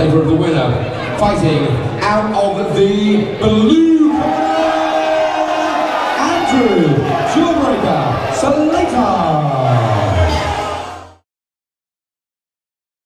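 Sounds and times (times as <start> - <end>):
crowd cheering and whooping: 4.1 - 11.2.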